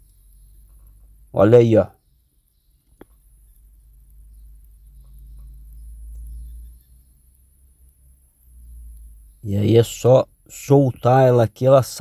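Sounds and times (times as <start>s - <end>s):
soft ticks: 0.0s - 1.1s, 2.4s - 9.3s.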